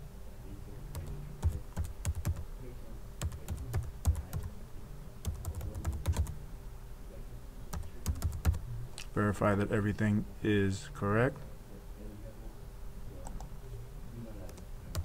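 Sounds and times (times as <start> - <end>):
computer keyboard typing: 0.9 - 2.5, 3.2 - 4.5, 5.2 - 6.4, 7.7 - 8.6, 14.4 - 15.0.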